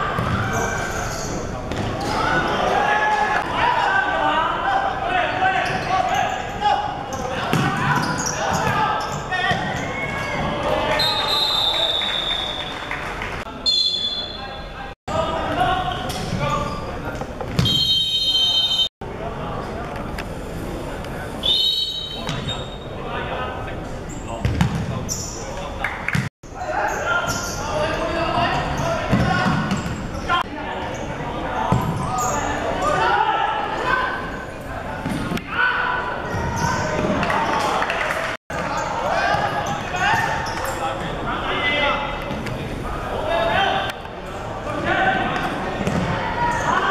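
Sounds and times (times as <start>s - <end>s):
ball kicked and bouncing on court: 0.2s - 0.5s, 7.5s - 8.8s, 17.4s - 17.8s, 24.4s - 24.9s, 45.4s - 46.2s.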